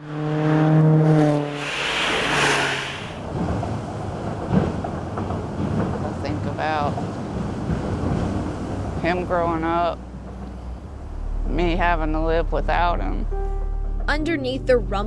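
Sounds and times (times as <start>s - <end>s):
car passing with tyre noise: 0.0s - 6.0s, 6.7s - 13.3s
highway traffic drone: 0.0s - 15.0s.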